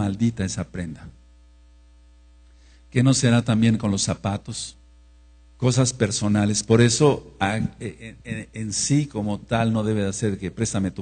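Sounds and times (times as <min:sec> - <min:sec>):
electrical mains hum: 0:00.0 - 0:11.0
person speaking: 0:05.6 - 0:11.0.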